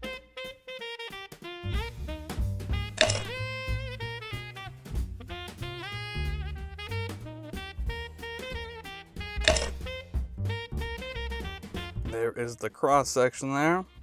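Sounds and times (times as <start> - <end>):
lead melody: 0.1 - 12.2
steady drum beat: 1.6 - 12.2.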